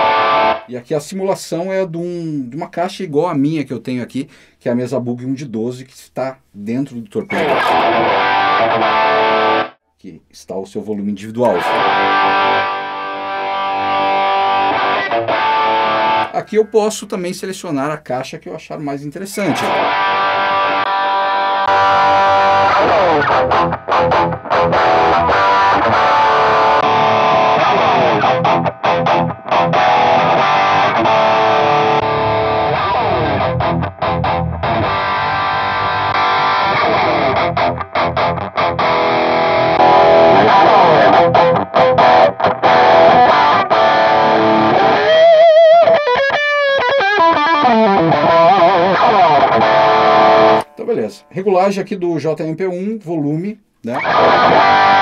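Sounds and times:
distorted electric guitar lead: 0.0s - 0.7s, 7.3s - 9.8s, 11.4s - 16.5s, 19.5s - 50.9s, 53.9s - 55.0s.

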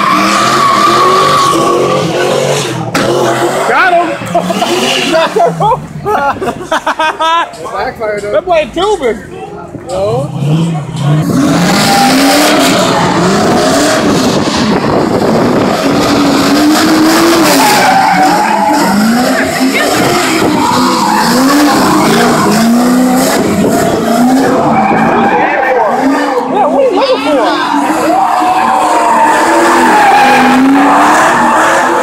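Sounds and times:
tires squealing and skidding: 0.0s - 5.4s, 10.3s - 32.0s
car engine revving: 0.0s - 7.3s, 8.0s - 32.0s.

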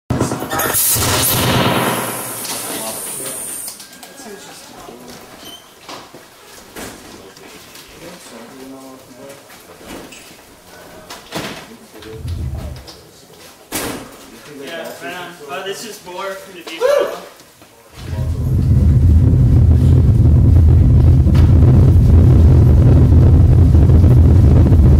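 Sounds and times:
harsh electronic noise: 0.4s - 3.1s
low thump: 12.1s - 13.1s, 18.0s - 24.7s.

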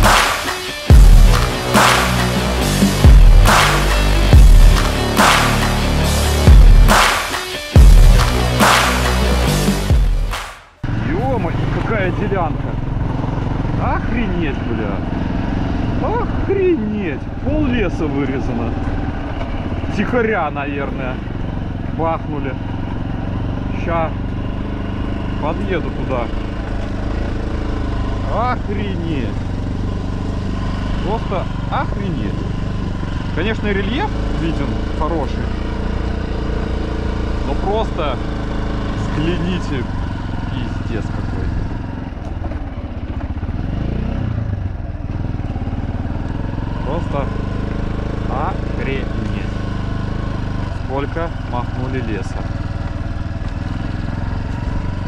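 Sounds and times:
music: 0.0s - 10.8s
dirt bike engine revving: 0.0s - 55.0s.

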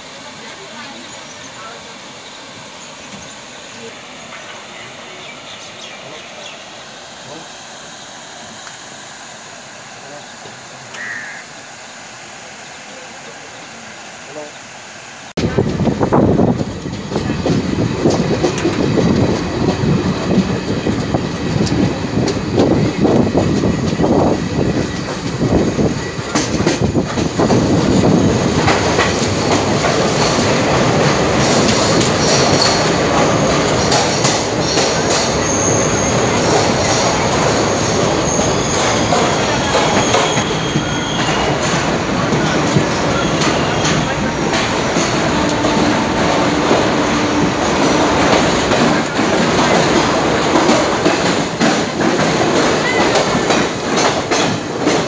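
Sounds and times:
train wheel rumble: 0.0s - 55.0s
clacks over rail joints: 16.4s - 24.1s, 26.1s - 35.5s, 36.3s - 55.0s
high-pitched wheel squeals: 37.7s - 41.6s.

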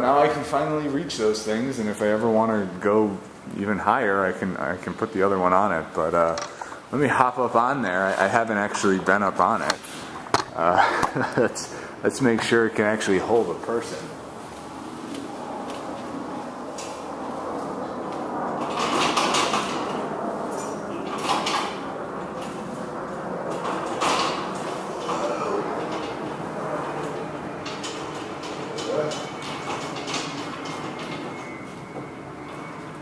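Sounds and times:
steel scaffolding creaking and rattling: 17.8s - 33.0s.

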